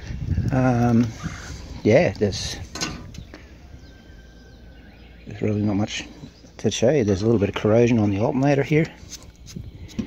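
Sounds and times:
faint high bird chirps: 2.9s - 8.5s.

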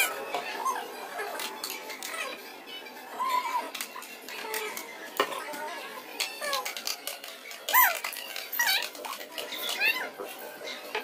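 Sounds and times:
high-pitched squeaky calls: 7.7s - 10.1s.

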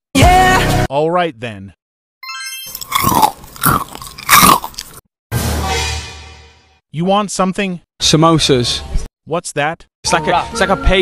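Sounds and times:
crunchy chewing chomps: 2.7s - 5.0s.

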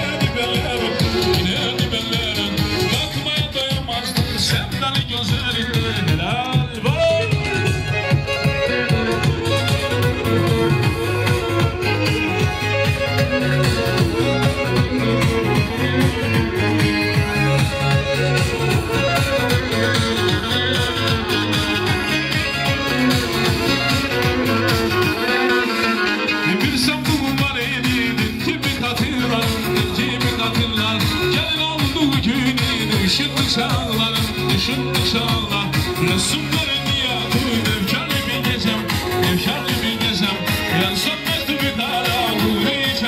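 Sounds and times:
bowed fiddle playing fast melody: 0.0s - 43.0s
steady driving beat: 0.0s - 43.0s.

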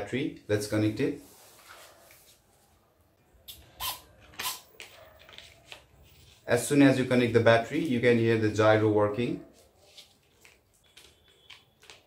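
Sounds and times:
connector clicks and plastic rustles: 10.2s - 12.0s.

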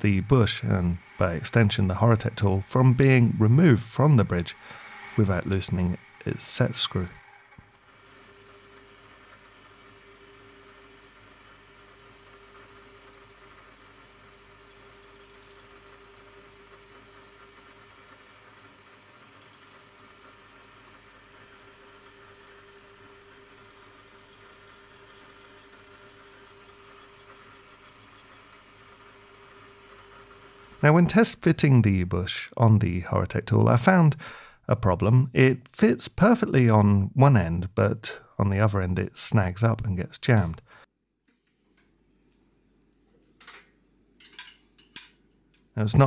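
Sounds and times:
faint steady hum: 19.3s - 35.6s.

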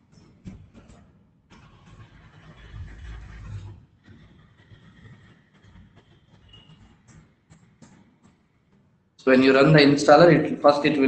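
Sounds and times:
low rumble: 1.6s - 3.9s.

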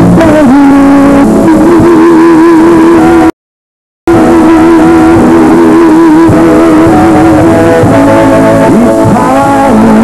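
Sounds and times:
woman singing with vibrato: 0.0s - 3.3s, 4.1s - 10.0s
instrumental backing: 4.1s - 10.0s.

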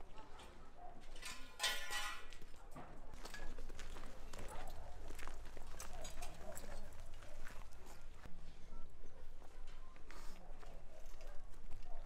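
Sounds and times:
rubble shifting under footsteps: 0.0s - 8.4s, 9.3s - 12.0s.

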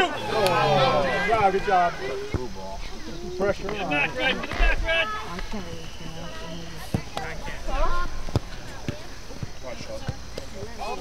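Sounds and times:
people calling out: 0.0s - 8.2s.

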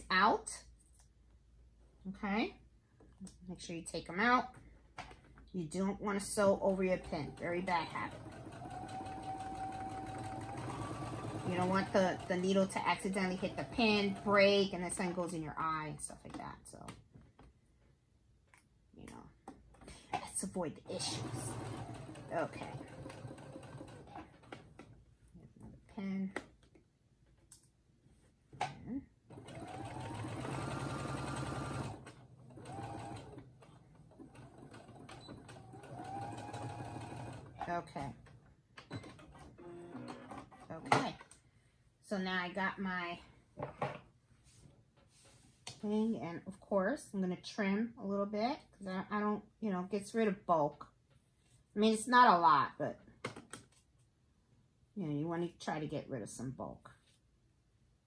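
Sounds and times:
sewing machine stitching: 6.7s - 15.1s, 20.8s - 24.9s, 29.3s - 38.1s.

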